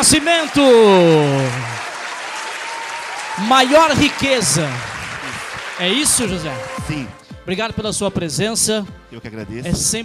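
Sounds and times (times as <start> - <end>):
applause: 0.0 - 7.2.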